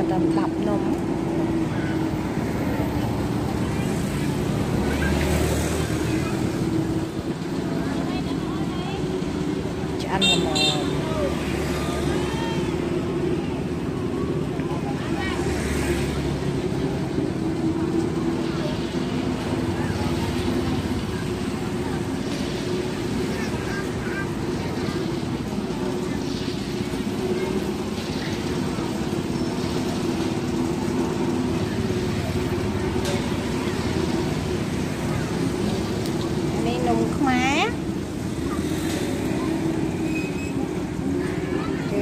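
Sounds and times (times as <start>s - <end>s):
engine hum: 0.0s - 42.0s
traffic noise: 0.0s - 42.0s.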